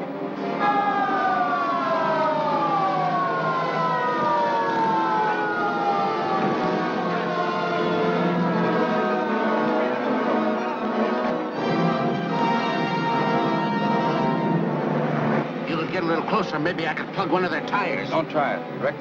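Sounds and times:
police sirens wailing: 0.0s - 18.8s
orchestral film music: 0.0s - 19.0s.

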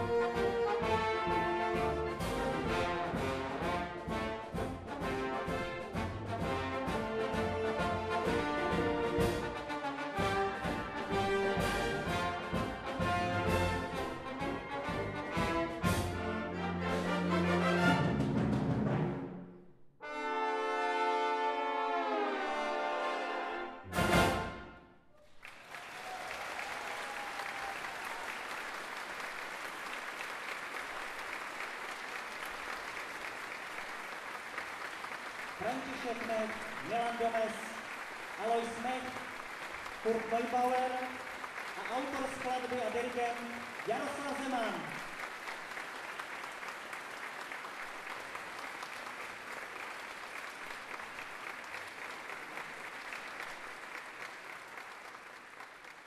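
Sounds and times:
trombones with wind band: 0.0s - 19.4s, 20.0s - 24.9s
audience applause: 25.2s - 56.0s.

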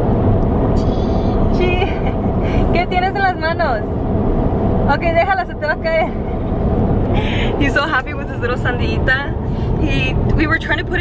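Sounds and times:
car road and engine noise: 0.0s - 11.0s
young child babbling: 0.8s - 1.5s.

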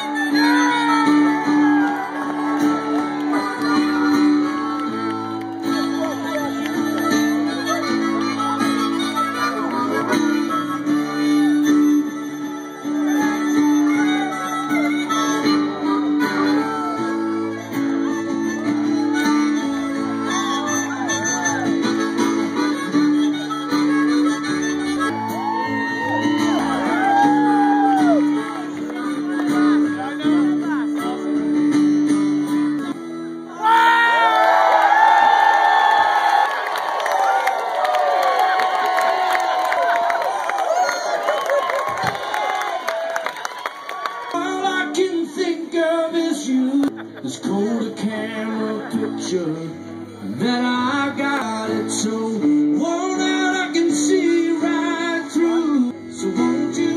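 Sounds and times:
crowd cheering: 0.0s - 30.8s, 33.5s - 49.7s
bass: 0.0s - 33.0s
blues-rock band playing: 0.0s - 33.3s
acoustic guitar: 0.0s - 33.6s, 44.3s - 56.9s
lead guitar bending notes: 0.0s - 33.6s.

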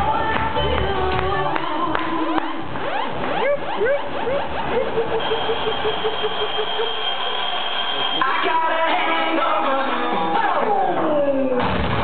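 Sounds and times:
rising synth zaps: 1.8s - 8.3s
pulsing synth tone: 1.9s - 8.5s
high whistling tone: 5.1s - 8.8s.

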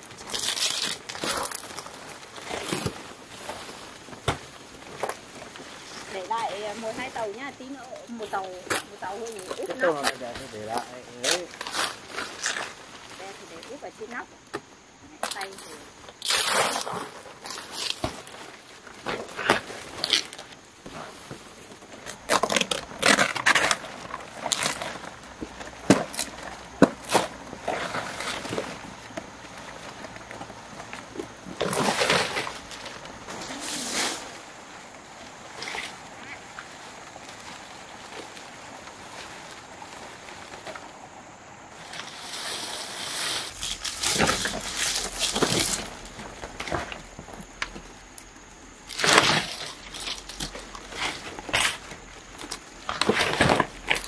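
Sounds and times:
palm fronds rustling and crackling: 0.0s - 54.0s.

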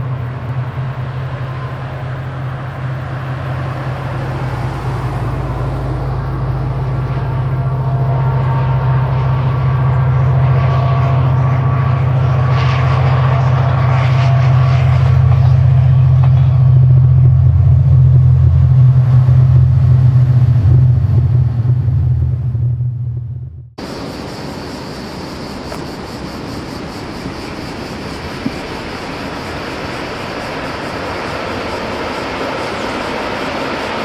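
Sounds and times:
engine humming: 0.0s - 24.0s, 25.5s - 34.0s.

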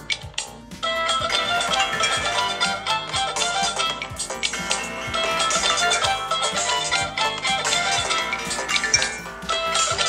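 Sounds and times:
phone ringtone melody: 0.0s - 10.0s.

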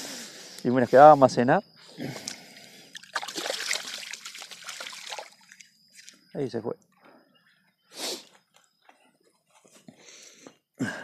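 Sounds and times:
shallow water splashing: 2.9s - 5.7s.

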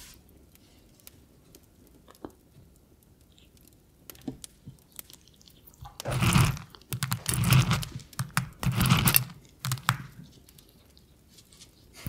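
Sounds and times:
ferret chewing: 3.0s - 12.0s
crunching: 3.3s - 12.0s.

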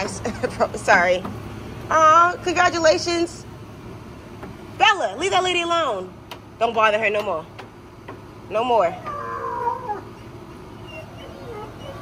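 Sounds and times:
dog whining: 8.9s - 12.0s.

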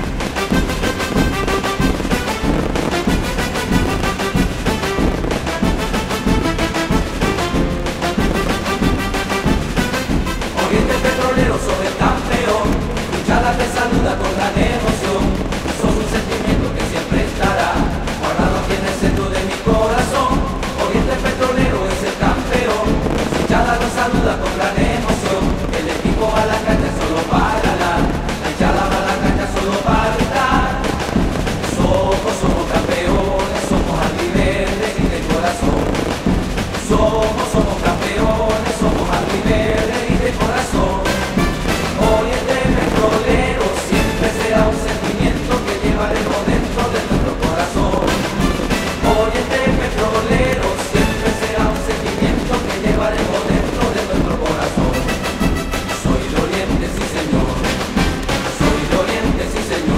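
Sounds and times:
live band music: 0.0s - 59.9s
man singing: 0.0s - 59.9s.

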